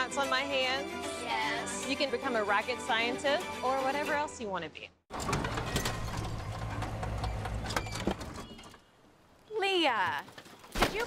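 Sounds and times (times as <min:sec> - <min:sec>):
van engine hum: 0:05.1 - 0:08.6
van body rattling: 0:05.1 - 0:08.8.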